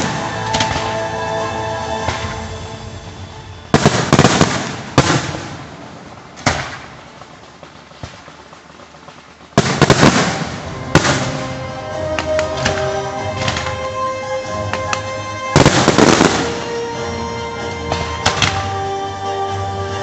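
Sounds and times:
fireworks bursting with sharp bangs: 0.0 - 19.2
fireworks crackling: 0.0 - 20.0.

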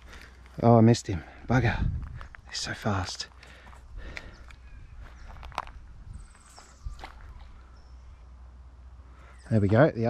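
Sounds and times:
footsteps on dry dirt: 0.0 - 7.6
steady low rumble: 0.0 - 10.0.

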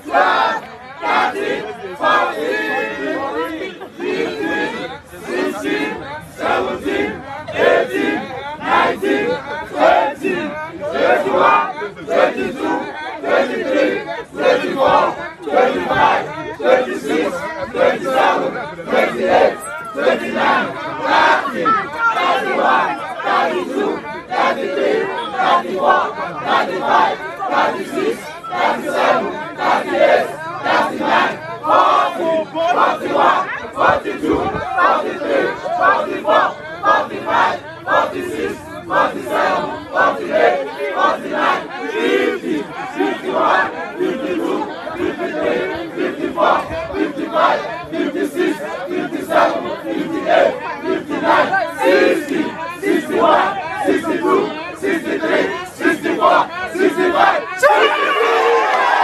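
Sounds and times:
crowd shouting and cheering: 0.0 - 59.0.

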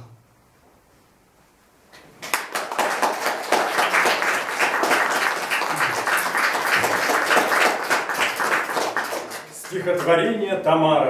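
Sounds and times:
audience applause: 2.2 - 10.2.

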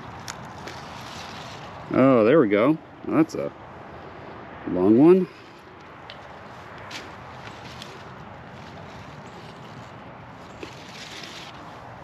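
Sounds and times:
hands rustling plants: 0.0 - 2.0, 5.7 - 12.0
outdoor background hiss: 0.0 - 12.0.

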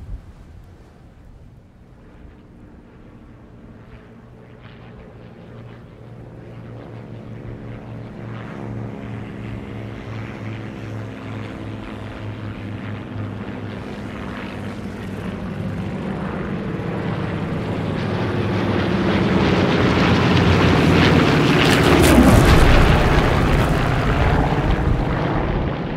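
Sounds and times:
biplane propeller engine: 0.0 - 25.9.

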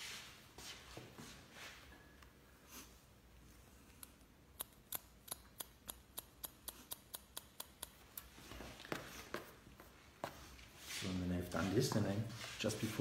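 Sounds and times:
scissors snipping hair: 4.0 - 8.4.

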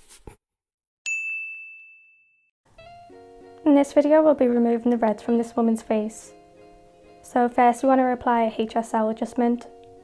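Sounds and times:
soft music: 2.7 - 10.0.

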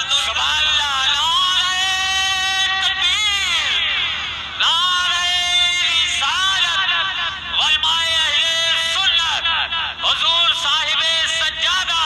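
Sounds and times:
man singing a long high note: 0.0 - 12.0.

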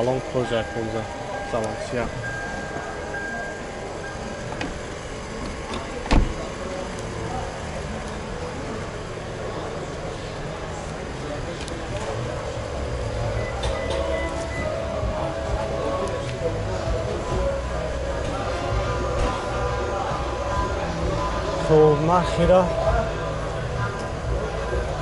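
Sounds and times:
car door shutting: 2.2 - 6.6.

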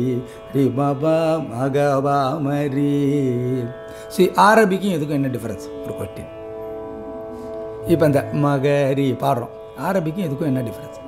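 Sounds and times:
steady drone: 0.0 - 11.0.

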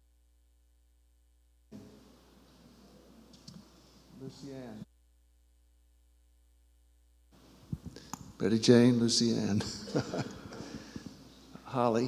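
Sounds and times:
faint room sound: 0.0 - 12.0.

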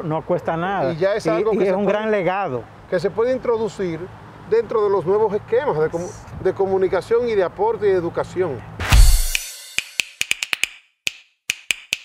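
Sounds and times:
sharp dry wood-block clicks: 9.8 - 12.0.

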